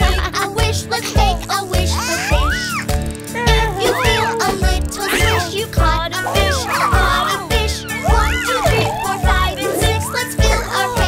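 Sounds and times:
upbeat backing music: 0.0s - 11.0s
high voice singing: 3.3s - 11.0s.

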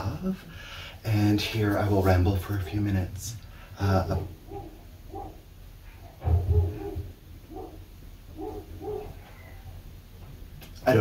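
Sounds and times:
dogs barking: 4.1s - 9.4s.

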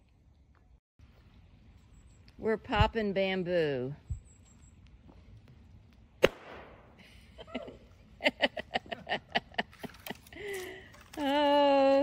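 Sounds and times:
bamboo bursting with sharp pop: 6.2s - 6.9s.

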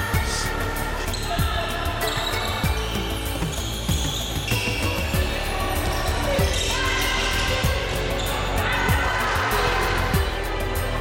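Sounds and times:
kick drum beat: 0.0s - 0.6s, 1.4s - 5.4s, 7.5s - 8.0s, 8.9s - 9.2s, 10.2s - 10.4s.

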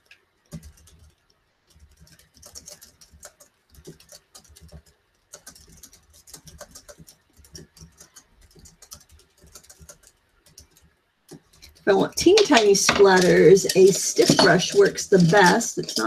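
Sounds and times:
paintbrush tapping: 1.7s - 16.0s.

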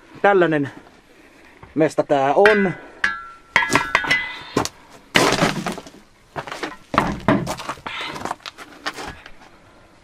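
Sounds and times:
debris clinking and crunching: 2.5s - 8.5s
sharp knocks: 6.9s - 7.7s.

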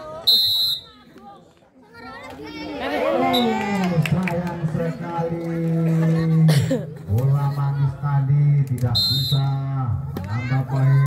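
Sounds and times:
referee's whistle blast: 0.2s - 1.0s, 8.9s - 9.6s.

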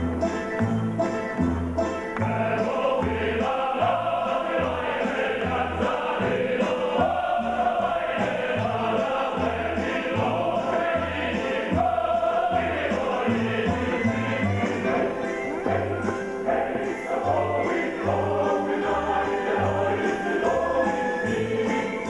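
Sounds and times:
band accompaniment with bass: 0.0s - 22.0s
choir singing in harmony: 2.2s - 22.0s.

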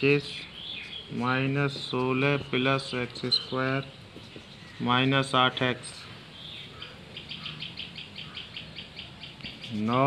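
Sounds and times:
small bird chirping rapidly: 0.0s - 10.0s.

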